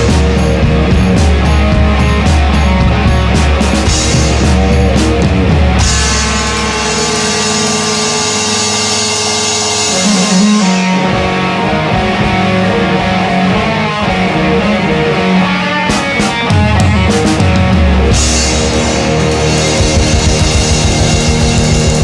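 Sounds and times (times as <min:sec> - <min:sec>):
drum hits: 0:00.0 - 0:11.4, 0:15.9 - 0:22.0
electric guitar riff: 0:00.0 - 0:22.0
punk rock band playing: 0:00.0 - 0:22.0.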